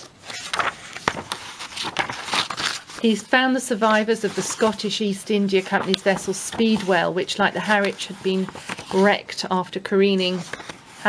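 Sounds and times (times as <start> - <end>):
book pages rustling: 0.0 - 11.0.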